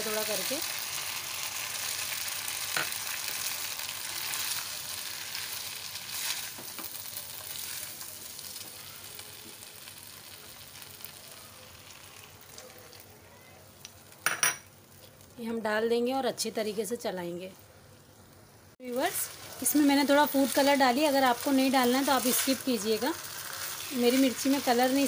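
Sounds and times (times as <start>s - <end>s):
chicken sizzling in a wok: 0.0s - 14.2s, 18.8s - 25.0s.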